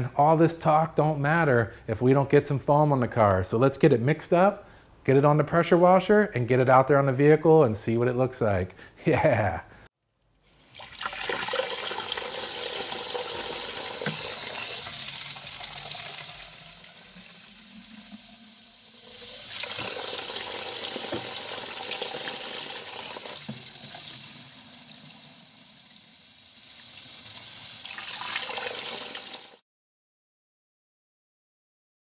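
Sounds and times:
hose water filling a bucket: 10.4s - 29.6s.

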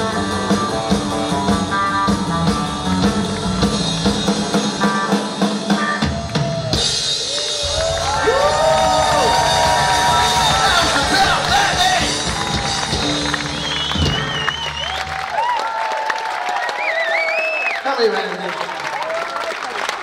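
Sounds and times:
live rock band: 0.0s - 17.9s
crowd cheering and applauding: 2.9s - 20.0s.

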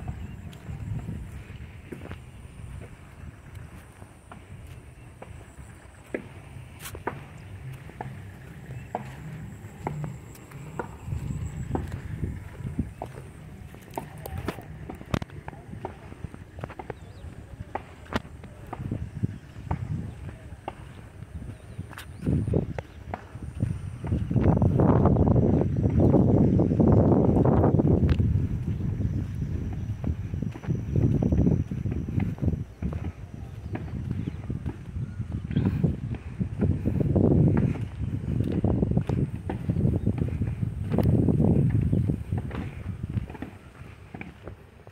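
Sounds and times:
footsteps on dirt path: 0.0s - 44.9s
handheld camera scuffs and clicks: 0.0s - 44.9s.

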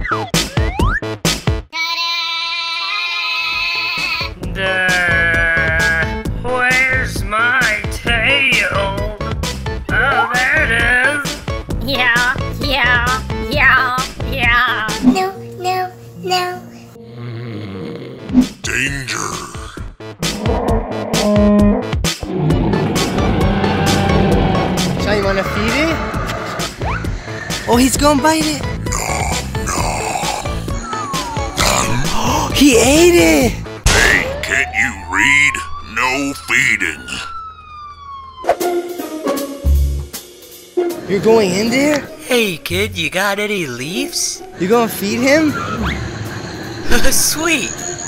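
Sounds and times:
background music with drum hits: 0.0s - 1.7s, 4.3s - 15.4s, 18.3s - 34.5s, 38.4s - 43.1s
low musical drone: 22.2s - 43.0s
police siren wail: 22.3s - 26.2s, 34.0s - 39.1s.

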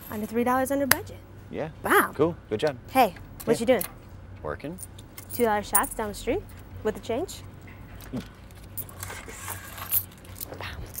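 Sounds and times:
coins jingling and clinking: 4.8s - 6.7s, 7.8s - 11.0s.

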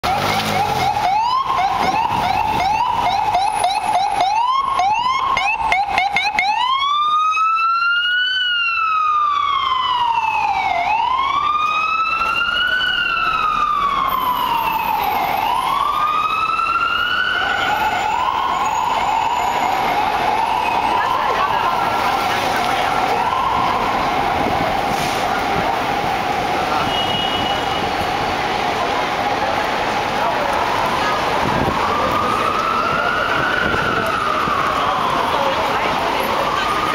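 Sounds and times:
ambulance siren: 0.0s - 36.9s.

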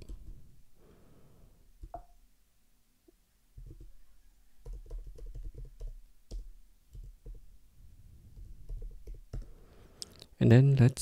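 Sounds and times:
keyboard typing: 4.6s - 7.5s, 8.4s - 9.5s.

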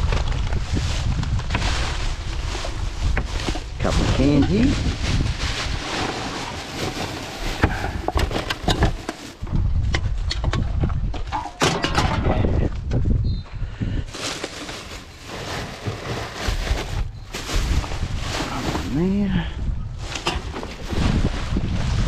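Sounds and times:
plastic bag rustling and crinkling: 0.0s - 9.5s, 14.0s - 22.0s
wind buffeting microphone: 0.0s - 11.3s, 11.9s - 14.2s, 16.4s - 22.0s.

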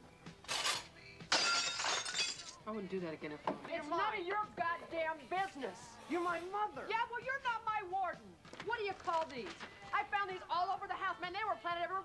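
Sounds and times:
glass shattering: 0.4s - 2.6s.

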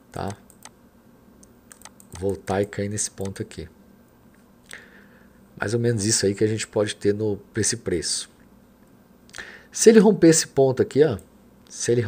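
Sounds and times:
person speaking: 0.0s - 0.7s, 1.7s - 3.8s, 9.7s - 12.0s
faint computer clicks: 1.4s - 3.4s.

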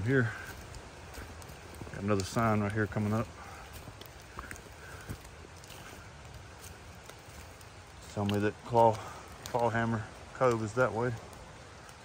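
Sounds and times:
footsteps on wet dirt trail: 0.0s - 12.0s
steady background hiss: 0.0s - 12.0s.

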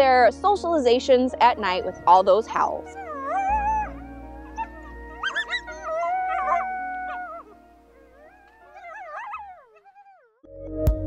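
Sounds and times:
background music: 0.0s - 9.8s, 10.5s - 11.0s
coyotes howling: 1.4s - 10.4s
coyotes yipping: 1.4s - 10.4s.

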